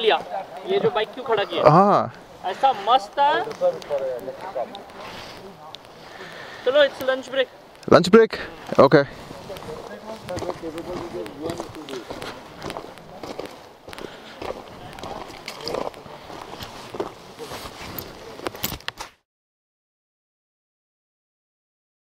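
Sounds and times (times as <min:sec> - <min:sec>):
footsteps on gravel: 0:08.6 - 0:19.2.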